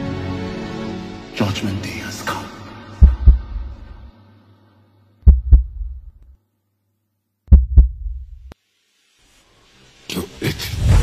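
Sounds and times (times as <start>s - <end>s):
background music: 0.0s - 6.2s
low heartbeat thumps: 3.0s - 4.1s, 5.2s - 6.2s, 7.5s - 8.5s.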